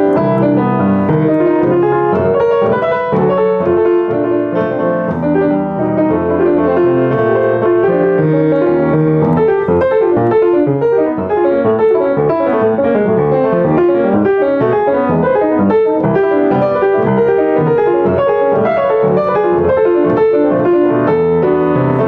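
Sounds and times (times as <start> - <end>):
solo jazz piano: 0.0 - 22.0.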